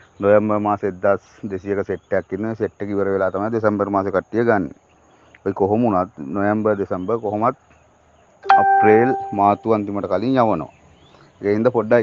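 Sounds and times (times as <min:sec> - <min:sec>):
man talking: 0:00.2 - 0:04.8, 0:05.5 - 0:07.6, 0:08.5 - 0:10.7, 0:11.4 - 0:12.0.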